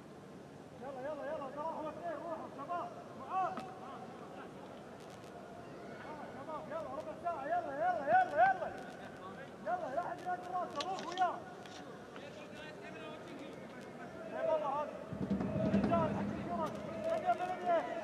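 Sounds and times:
stadium crowd hum: 0.0s - 18.0s.

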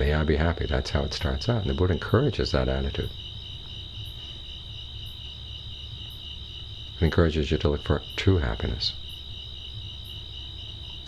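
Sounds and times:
crickets trilling: 0.0s - 11.0s
low background hum: 0.0s - 11.0s.

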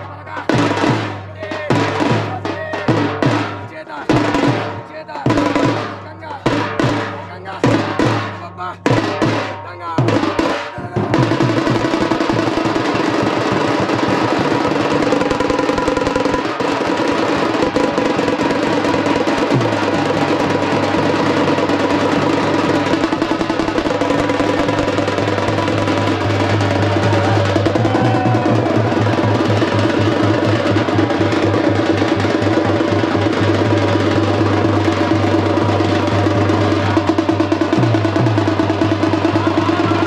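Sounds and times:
frame drums beaten with sticks: 0.0s - 40.0s.

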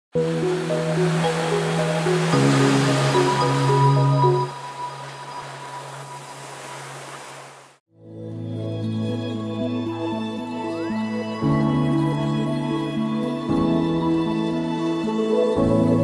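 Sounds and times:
ocean surf: 0.2s - 7.8s.

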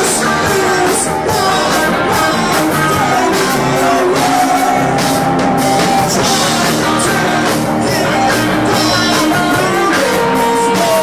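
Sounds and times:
drum kit: 0.0s - 11.0s
electric guitars: 0.0s - 11.0s.

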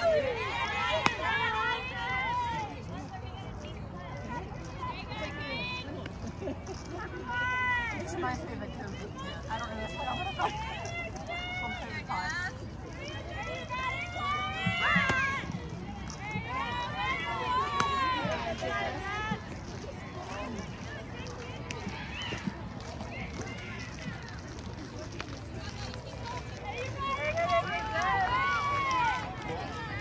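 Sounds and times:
steady outdoor rumble: 0.0s - 30.0s.

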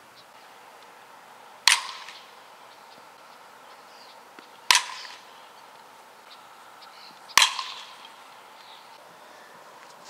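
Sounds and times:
bat striking softball: 1.6s - 2.4s, 4.4s - 6.4s, 7.3s - 8.8s.

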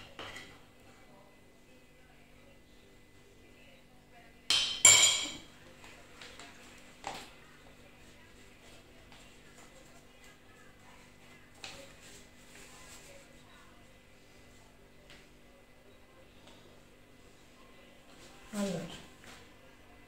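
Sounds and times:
metal spoon clinking ceramic bowl: 4.5s - 5.4s.

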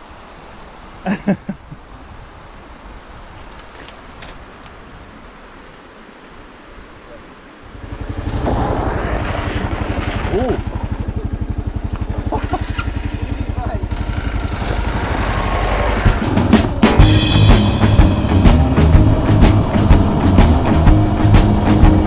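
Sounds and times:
river water rushing: 0.0s - 11.8s
tires on gravel: 7.6s - 16.8s
motorcycle engine: 7.6s - 22.0s.

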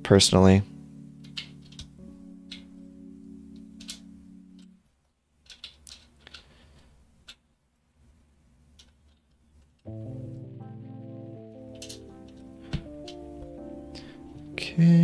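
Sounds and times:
soft background music: 0.0s - 4.9s, 9.9s - 15.0s
keycaps clicking: 1.2s - 2.7s, 3.6s - 4.7s, 5.4s - 6.5s, 11.6s - 13.6s.

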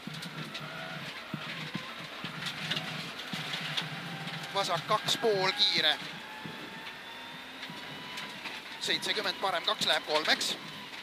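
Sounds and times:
car engine running: 0.0s - 11.0s
tyres on gravel: 0.0s - 11.0s.

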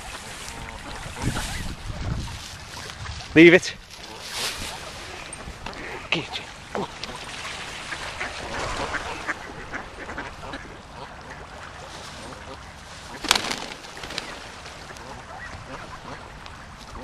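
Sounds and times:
ducks quacking: 0.0s - 17.0s.

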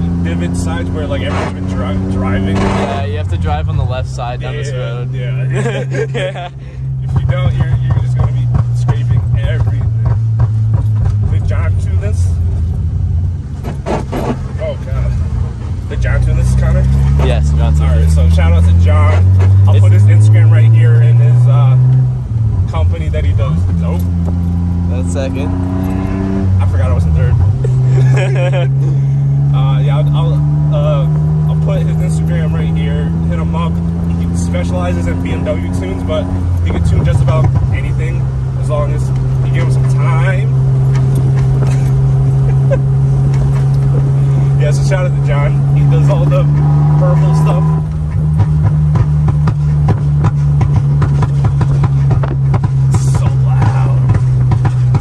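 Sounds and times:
car engine running: 0.0s - 55.0s.

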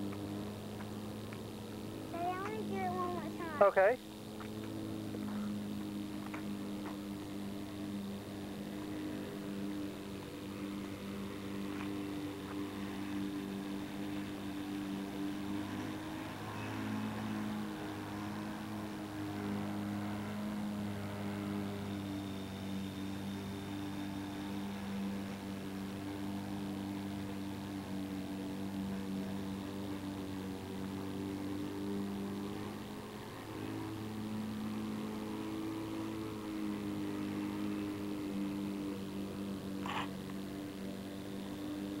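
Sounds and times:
low buzzy hum: 0.0s - 42.0s.

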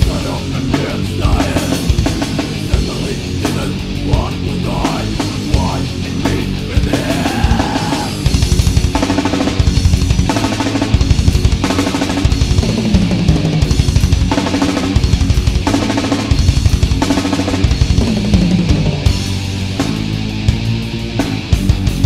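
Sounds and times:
fast drum kit pounding: 0.0s - 22.0s
metal band playing: 0.0s - 22.0s.

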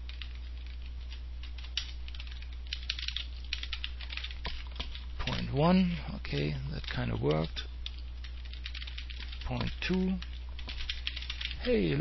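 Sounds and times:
computer keyboard typing: 0.0s - 12.0s.

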